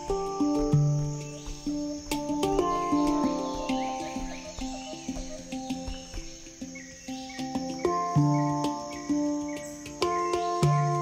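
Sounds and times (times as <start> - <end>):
insect chirring: 0.0 - 11.0
light percussive clicks: 0.0 - 11.0
melodic background music: 0.0 - 11.0.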